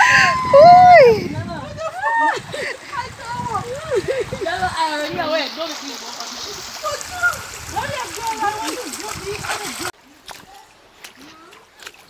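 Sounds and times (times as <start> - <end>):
voices: 0.0 - 11.8
river water over rocks: 2.0 - 12.0.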